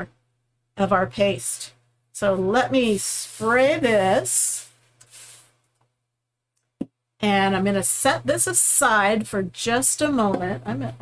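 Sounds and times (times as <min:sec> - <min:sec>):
spray bottle hissing: 0:05.0 - 0:05.6.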